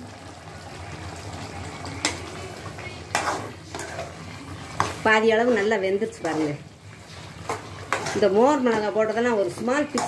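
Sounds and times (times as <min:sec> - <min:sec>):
chicken sizzling in a pan: 0:00.0 - 0:10.0
spatula scraping metal pan: 0:03.1 - 0:10.0.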